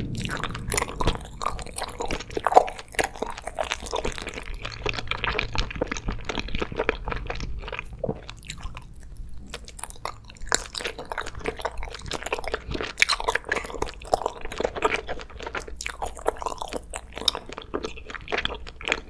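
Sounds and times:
chewing gummy candy: 0:00.0 - 0:19.0.

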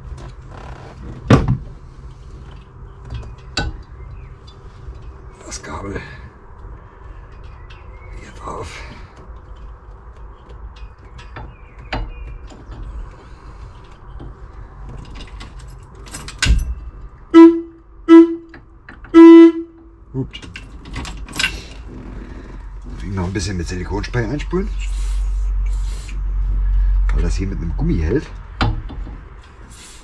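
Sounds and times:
vehicle horn toots: 0:17.3 - 0:19.9.

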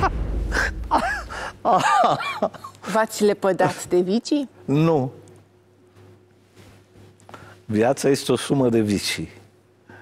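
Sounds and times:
low rumble: 0:00.0 - 0:01.5
man laughing heartily: 0:00.0 - 0:02.7.

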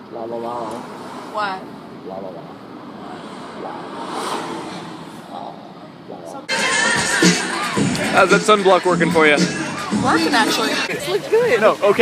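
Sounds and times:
car cabin road and engine noise: 0:00.0 - 0:12.0.

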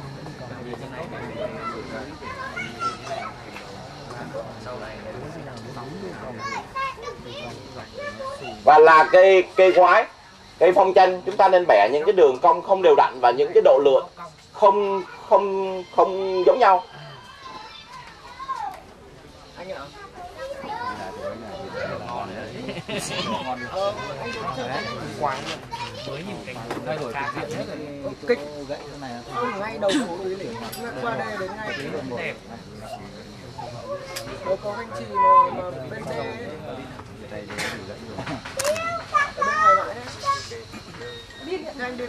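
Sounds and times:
chatter of people: 0:00.0 - 0:42.0
children's voices: 0:01.1 - 0:03.9, 0:06.1 - 0:09.9, 0:14.6 - 0:19.0, 0:19.8 - 0:28.1, 0:29.3 - 0:36.7, 0:38.6 - 0:42.0.

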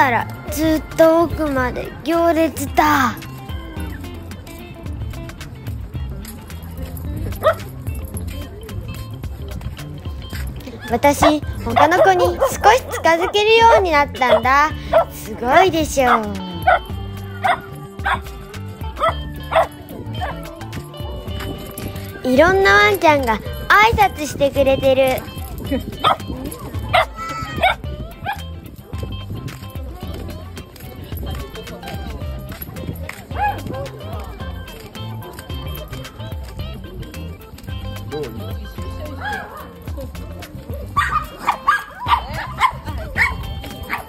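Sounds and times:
background music: 0:00.0 - 0:44.0
dog yipping: 0:07.3 - 0:08.4, 0:10.6 - 0:15.2, 0:15.8 - 0:22.2, 0:25.1 - 0:29.1, 0:30.8 - 0:36.6, 0:38.1 - 0:44.0.

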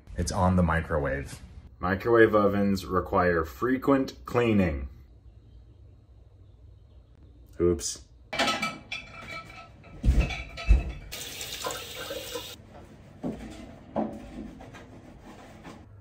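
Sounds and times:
handling noises and knocks: 0:08.4 - 0:11.2, 0:12.6 - 0:16.0
tap water running: 0:11.1 - 0:12.6.

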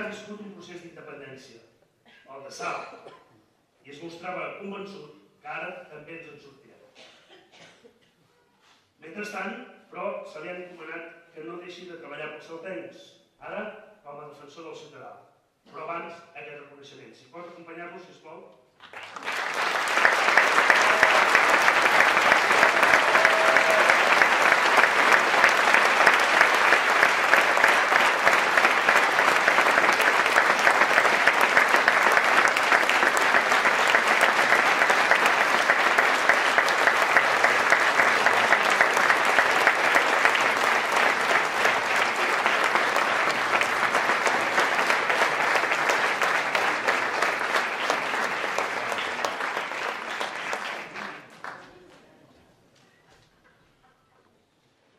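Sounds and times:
audience applauding: 0:18.8 - 0:52.0.

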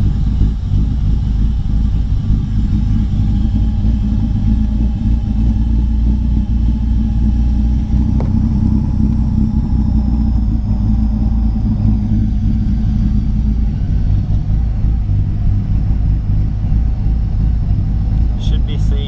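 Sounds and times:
car engine idling: 0:00.0 - 0:19.0.

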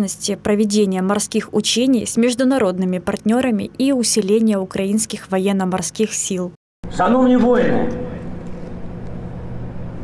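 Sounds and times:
low even hum: 0:06.9 - 0:10.0.

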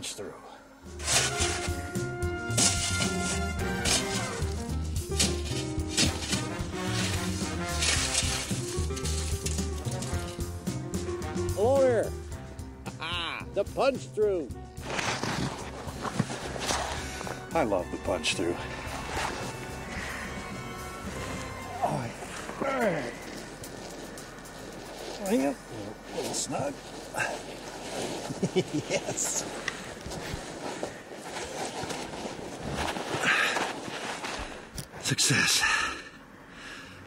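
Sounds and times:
packed snow crunching: 0:00.9 - 0:12.1, 0:13.8 - 0:35.2.

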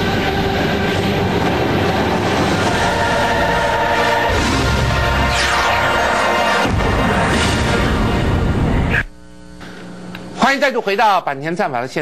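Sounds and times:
loud rushing noise: 0:00.0 - 0:08.9.

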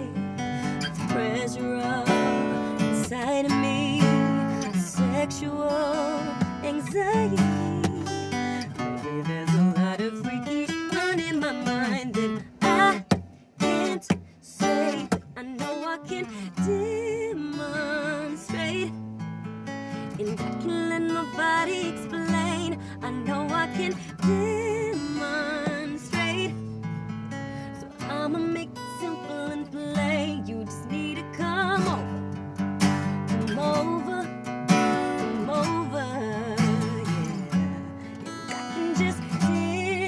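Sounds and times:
woman singing: 0:00.0 - 0:19.1, 0:19.9 - 0:40.0
acoustic guitar strummed and picked: 0:00.0 - 0:40.0.

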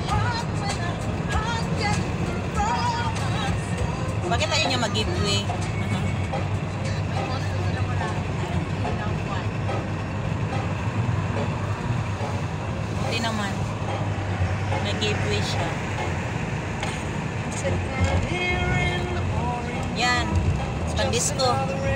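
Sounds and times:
engine and tyres rumbling: 0:00.0 - 0:21.9.

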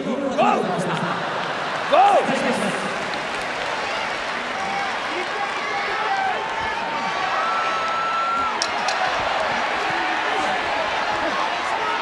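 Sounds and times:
hubbub of many voices: 0:00.0 - 0:12.0.

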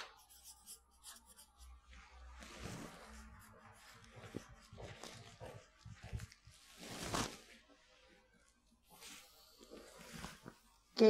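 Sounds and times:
marker scratching on paper: 0:00.0 - 0:02.0.

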